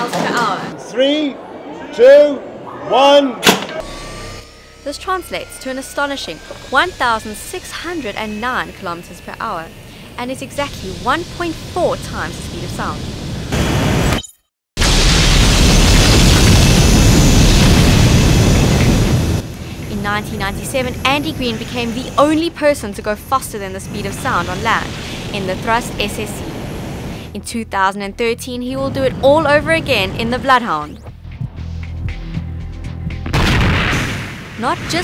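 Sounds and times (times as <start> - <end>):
low sustained music tones: 3.8 - 11.9
loud rushing boom: 14.8 - 20.2, 33.2 - 34.6
jet engine roaring: 14.8 - 27.3.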